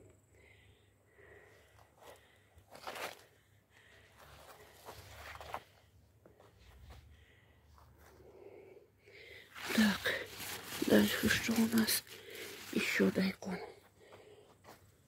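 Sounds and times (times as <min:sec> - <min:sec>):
footsteps crunching dry soil: 0:01.9 - 0:03.4
leafy plants rustling: 0:09.5 - 0:13.6.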